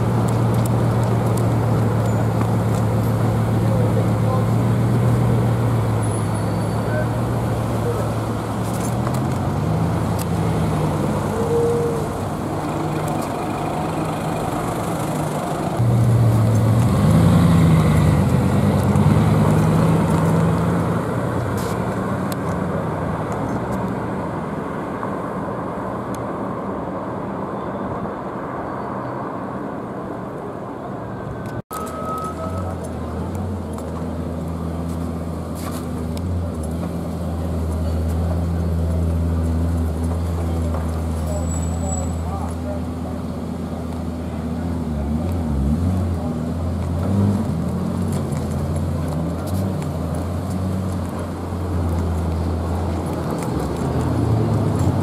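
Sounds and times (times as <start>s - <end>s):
street traffic: 0.0s - 55.0s
sports car engine accelerating: 12.3s - 21.6s.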